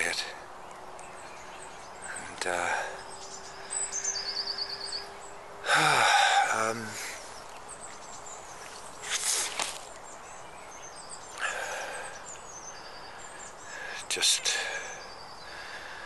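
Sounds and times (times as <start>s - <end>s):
small birds chirping: 0.0s - 16.0s
man sighing: 5.6s - 7.2s, 11.4s - 12.2s.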